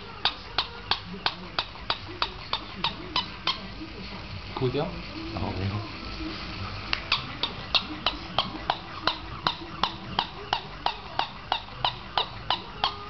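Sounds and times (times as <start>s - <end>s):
toy dog barking: 7.1s - 13.0s.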